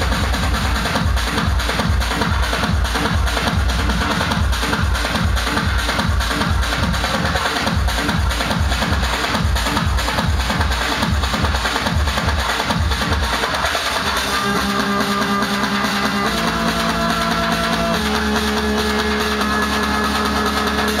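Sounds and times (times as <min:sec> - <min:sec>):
kick-drum beat: 0:00.0 - 0:21.0.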